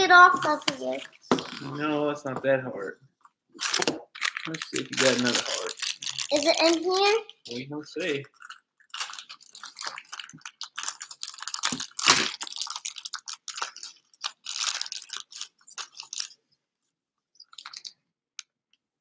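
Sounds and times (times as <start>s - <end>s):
plastic packaging crinkling: 3.6s - 7.3s, 8.0s - 16.4s, 17.4s - 18.0s.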